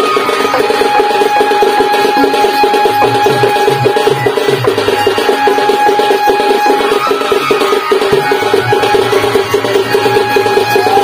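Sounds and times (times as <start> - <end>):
fast percussion beat: 0.0 - 11.0
swooping melodic note: 0.0 - 11.0.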